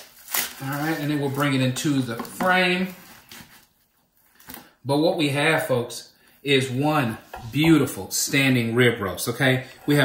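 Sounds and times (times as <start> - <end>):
man speaking: 0.6 - 3.0, 4.8 - 10.0.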